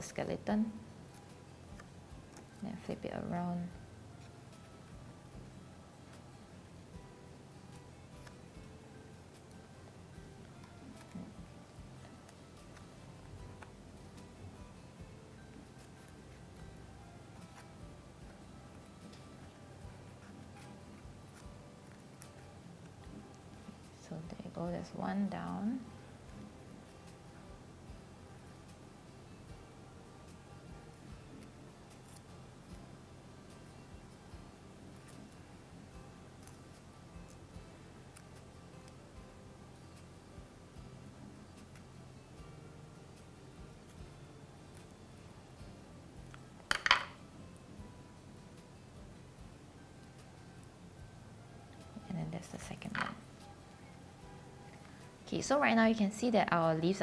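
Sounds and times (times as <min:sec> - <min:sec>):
faint background music: 0:00.0 - 0:57.0.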